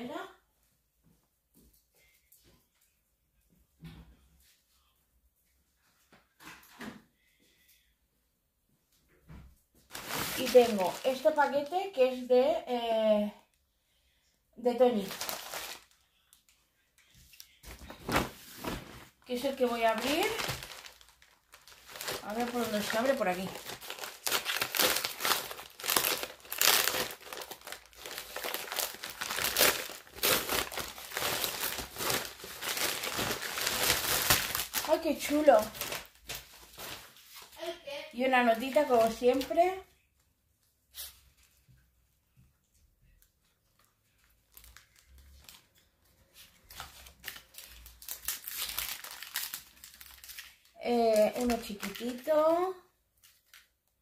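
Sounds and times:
woman speaking: 0.0 - 0.4, 10.3 - 13.4, 14.6 - 15.2, 19.3 - 20.6, 22.2 - 23.7, 34.8 - 35.8, 37.6 - 39.9, 50.8 - 52.9
parcel packaging crinkling: 9.9 - 12.0, 14.9 - 16.0, 17.4 - 37.2, 43.8 - 45.9, 46.6 - 52.6, 53.2 - 53.8.

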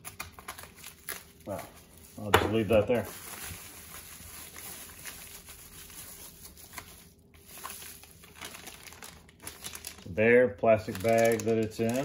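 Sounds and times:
plastic wrap rustling and crinkling: 0.0 - 12.0.

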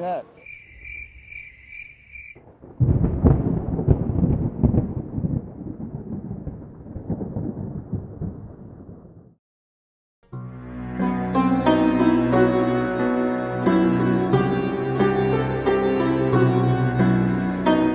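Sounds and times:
rolling thunder rumble: 2.4 - 9.4.

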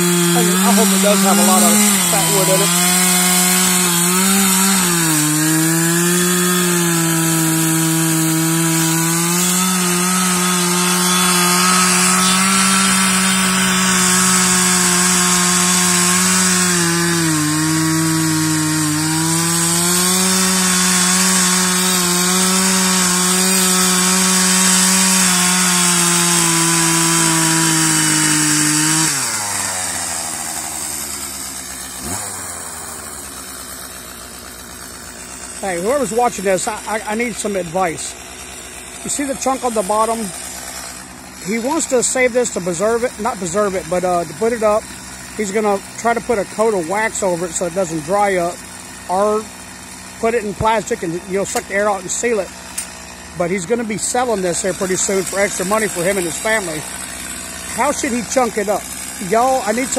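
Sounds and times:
chainsaw cutting wood: 0.0 - 59.9.

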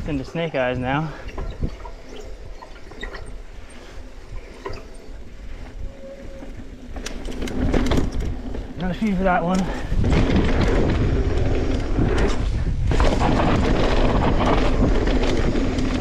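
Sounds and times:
bike clicks and rattles: 0.0 - 16.0
bike tyres on dirt: 0.0 - 16.0
wind rumbling on microphone: 0.0 - 16.0.

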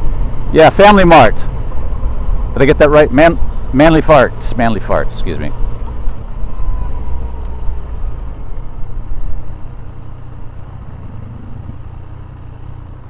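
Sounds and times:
motorcycle engine rumble: 0.0 - 13.0.

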